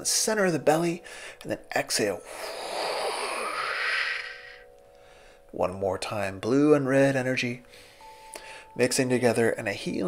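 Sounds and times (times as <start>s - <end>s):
man exhaling slowly: 2.2s - 5.4s.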